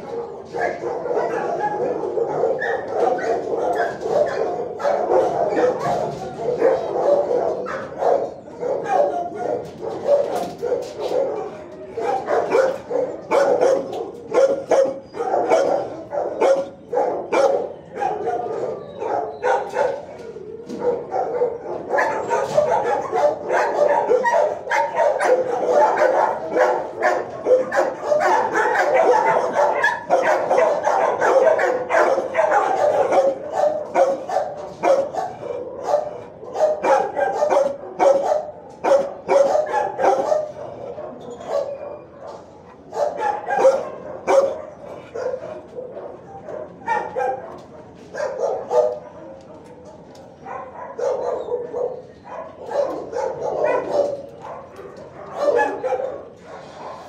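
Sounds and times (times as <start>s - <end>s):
dogs barking: 0.0s - 57.0s.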